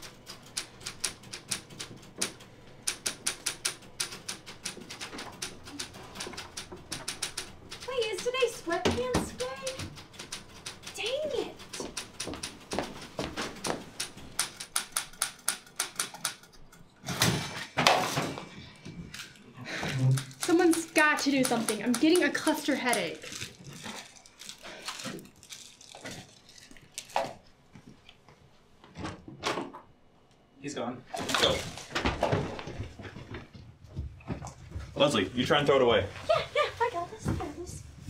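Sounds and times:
typewriter keys clacking: 0.0s - 16.5s, 20.1s - 23.6s
quick footsteps and shuffling: 11.8s - 13.9s.

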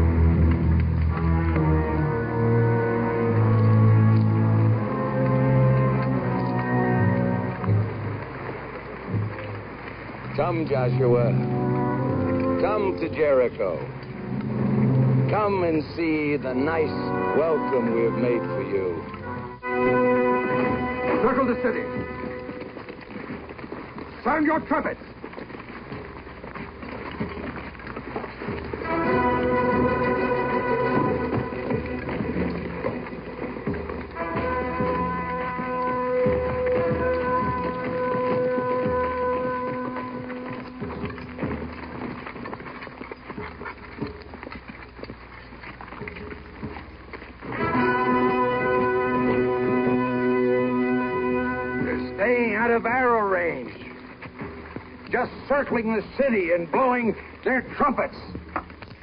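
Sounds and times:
trumpet blasts: 10.3s - 22.8s, 28.8s - 33.1s, 34.0s - 42.2s, 47.4s - 54.4s.

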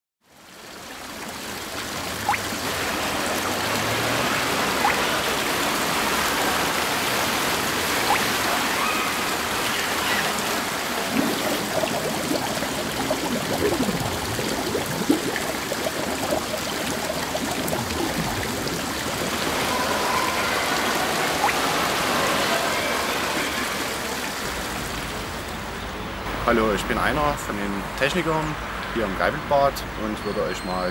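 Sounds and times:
rushing water: 0.2s - 30.9s.

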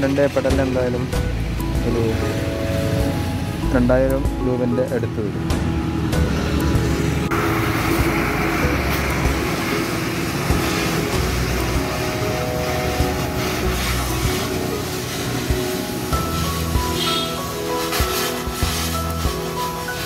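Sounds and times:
background music: 0.0s - 20.0s
arc welding crackling hiss: 6.8s - 20.0s.

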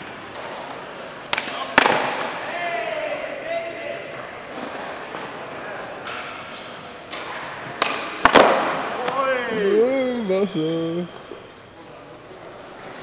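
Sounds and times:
skateboard striking concrete: 1.3s - 2.3s, 7.1s - 8.8s
background chatter: 3.2s - 13.0s.

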